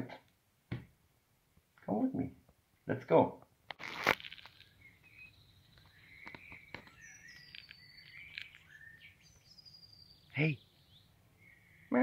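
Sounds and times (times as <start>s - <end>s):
faint birdsong whistles: 4.5s - 12.0s.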